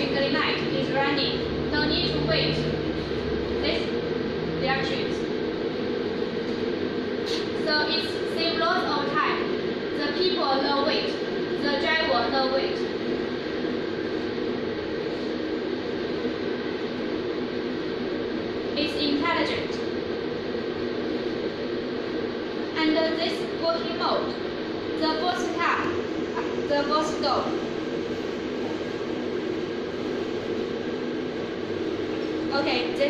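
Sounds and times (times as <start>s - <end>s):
low hum: 0.0s - 33.0s
steady mechanical drone: 0.0s - 33.0s.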